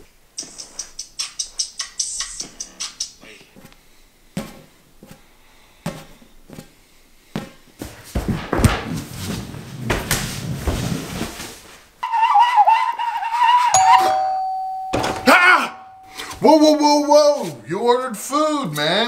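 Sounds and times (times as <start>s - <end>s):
exercise ball thumps: 4.3s - 5.2s, 5.8s - 10.8s
heavy thudding and scuffling: 4.3s - 12.0s
doorbell ding: 13.8s - 16.3s.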